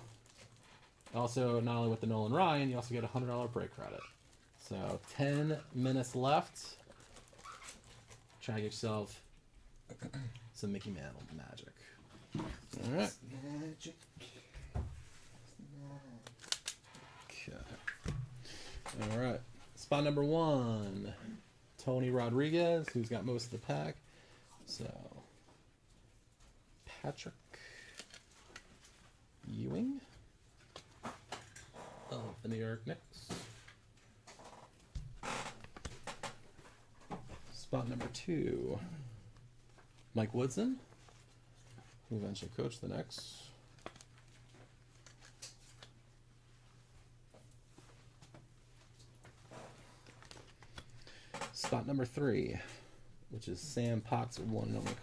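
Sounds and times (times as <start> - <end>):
low steady hum: 8.0 - 55.0
trading cards clicking and rustling: 16.2 - 19.8, 34.4 - 36.7, 43.1 - 46.0, 49.2 - 51.8.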